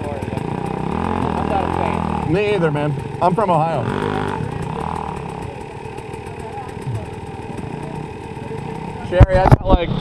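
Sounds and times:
dirt bike engines idling: 0.0s - 10.0s.

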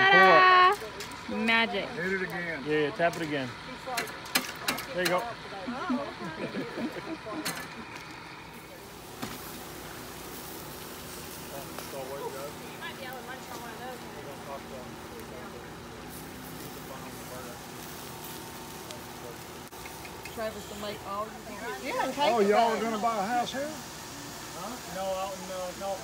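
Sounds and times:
faint voices talking: 0.0s - 26.0s
patties sizzling on a grill: 0.0s - 26.0s.

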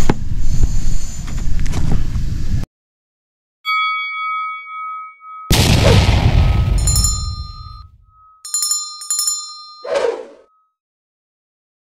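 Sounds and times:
bell-like dings: 3.7s - 10.8s
low boom: 5.5s - 8.2s.

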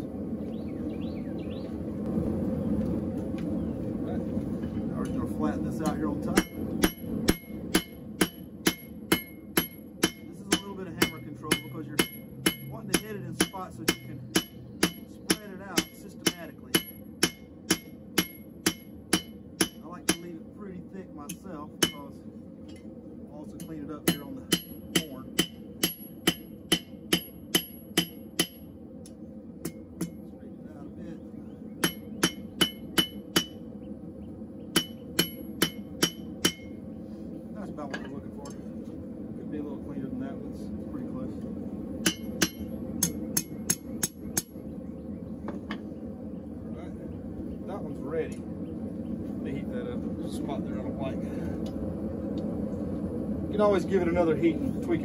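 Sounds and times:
hammer striking steel on anvil: 5.8s - 20.4s, 21.3s - 22.1s, 23.6s - 28.7s, 31.8s - 33.6s, 34.7s - 36.7s, 42.0s - 44.5s.

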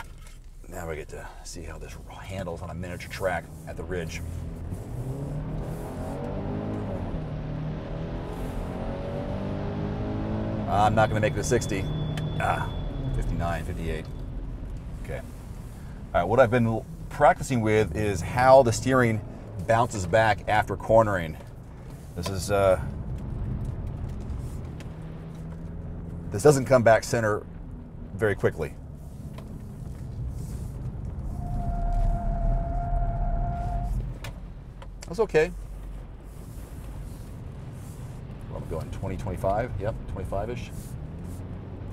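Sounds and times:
car engine accelerating: 1.6s - 41.9s
high tyre squeal: 10.5s - 14.4s, 31.2s - 34.2s.

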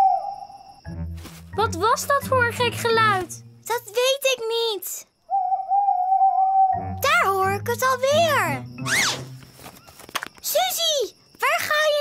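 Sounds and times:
cartoon owl hooting: 0.0s - 0.6s, 5.3s - 9.2s.

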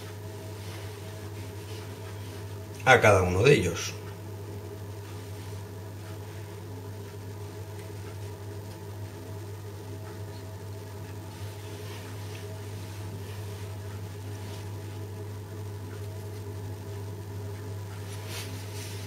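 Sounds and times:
low electrical hum: 0.0s - 19.0s.

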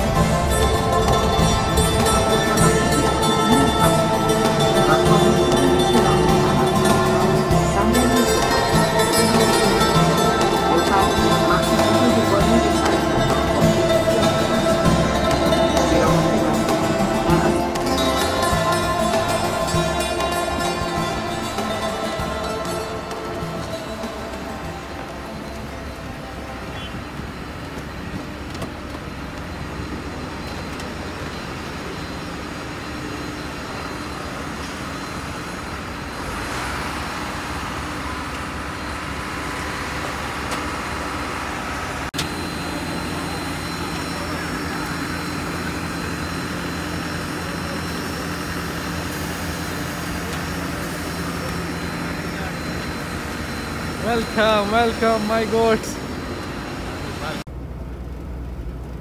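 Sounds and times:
thin high whine: 0.0s - 57.5s
aircraft and vehicle machine noise: 0.0s - 59.0s.

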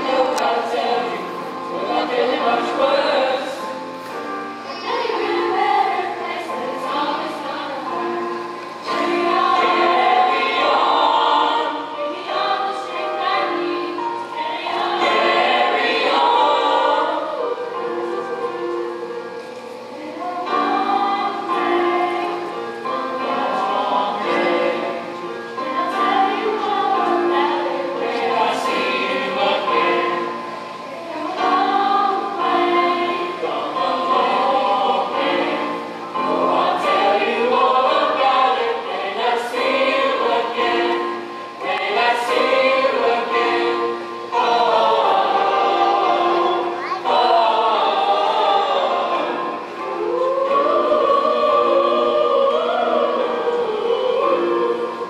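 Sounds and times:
children's chorus singing: 0.0s - 55.0s.

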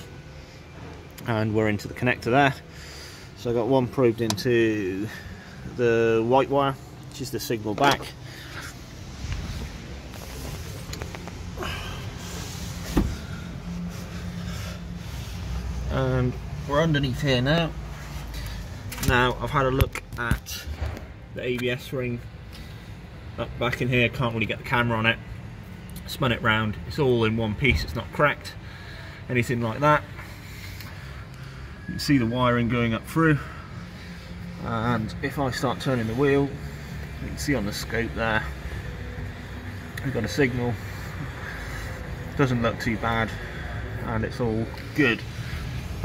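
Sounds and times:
low workshop hum: 0.0s - 46.0s.

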